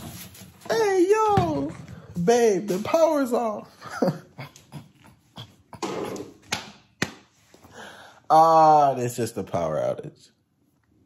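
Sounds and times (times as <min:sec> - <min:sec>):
man laughing under his breath: 0:03.7 - 0:06.4.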